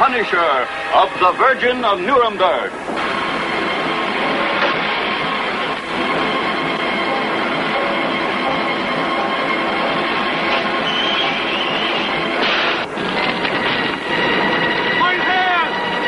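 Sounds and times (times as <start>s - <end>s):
harsh dense wash of sound: 0.0s - 10.9s.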